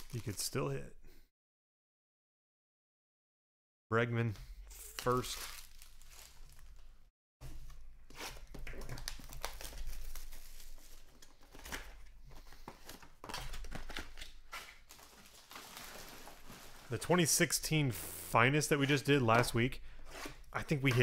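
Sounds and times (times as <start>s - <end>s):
foil wrappers crinkling: 0.0s - 0.6s, 4.8s - 6.9s, 8.6s - 12.0s, 12.8s - 17.0s.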